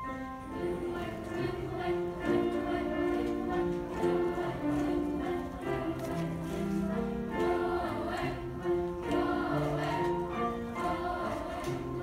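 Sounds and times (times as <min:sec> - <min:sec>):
children's choir singing: 0:00.0 - 0:12.0
piano accompaniment: 0:00.0 - 0:12.0.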